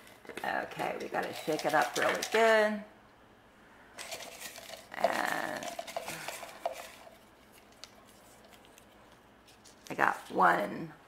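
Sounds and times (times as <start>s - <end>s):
paper slips rattling in container: 0.8s - 2.6s, 4.0s - 8.9s.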